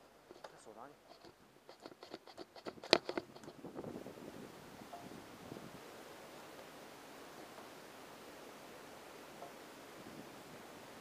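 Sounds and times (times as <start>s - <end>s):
steady rustling: 0.0s - 4.1s.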